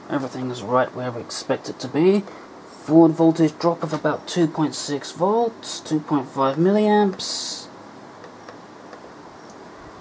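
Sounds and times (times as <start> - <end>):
faint room hiss: 0.0 - 10.0.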